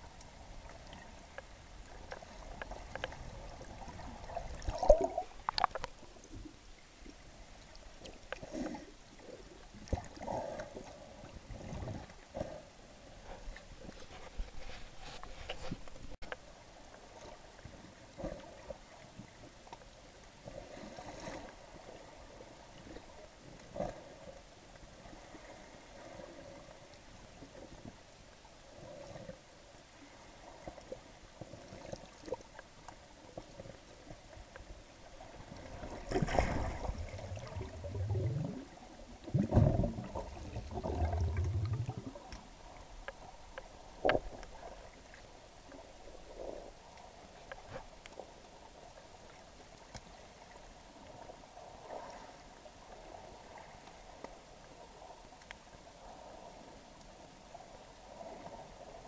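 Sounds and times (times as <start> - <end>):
faint underwater crackling: 0.0 - 59.0
low gurgling bubbles: 1.8 - 6.4, 35.2 - 42.9.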